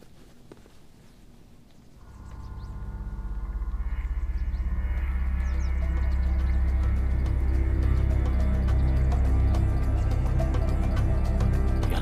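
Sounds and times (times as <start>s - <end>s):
layered held tones: 2.0s - 12.0s
low sustained drone: 2.0s - 12.0s.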